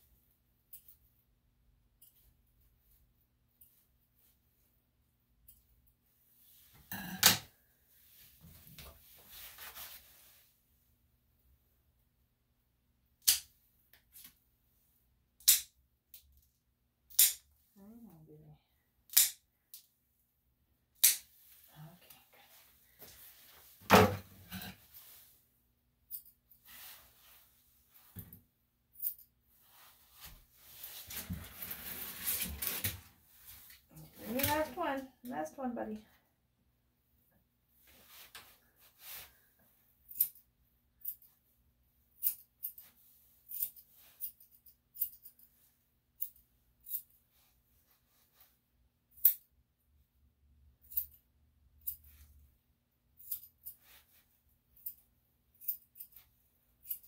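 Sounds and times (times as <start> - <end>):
nail clippers snapping: 17.1 - 17.4, 19.1 - 19.4.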